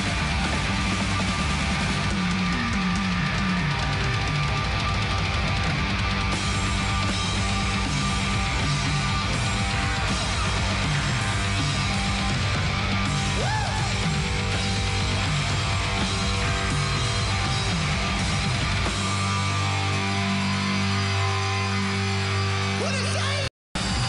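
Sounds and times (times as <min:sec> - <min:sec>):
steady drum beat: 0:00.0 - 0:19.7
bass guitar: 0:00.0 - 0:24.0
distorted electric guitars: 0:00.0 - 0:24.0.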